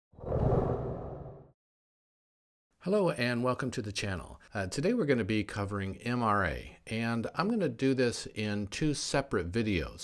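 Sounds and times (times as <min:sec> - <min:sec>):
whoosh: 0:00.2 - 0:01.5.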